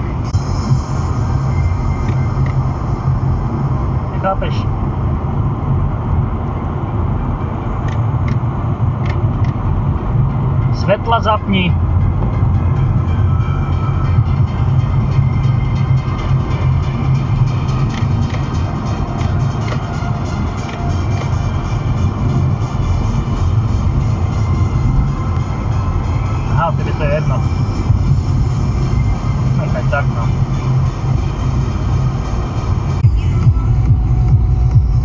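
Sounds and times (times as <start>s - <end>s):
car stereo music: 0.0s - 35.0s
highway road noise: 0.0s - 35.0s.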